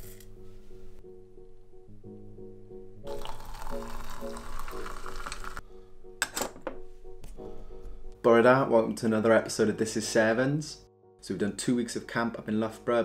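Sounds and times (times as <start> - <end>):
background music: 0.0 - 13.0
water pouring into teapot: 3.0 - 5.6.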